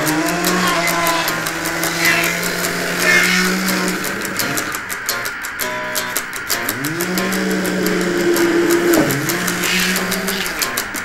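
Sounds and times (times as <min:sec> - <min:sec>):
cymbal-like ticks: 0:00.0 - 0:11.0
distorted electric guitar: 0:00.0 - 0:11.0.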